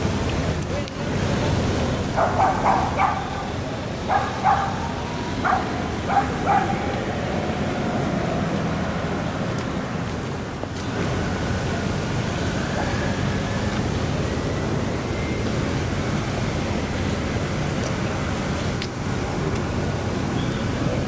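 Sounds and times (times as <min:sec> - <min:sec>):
street noise: 0:00.0 - 0:21.0
wind: 0:00.0 - 0:21.0.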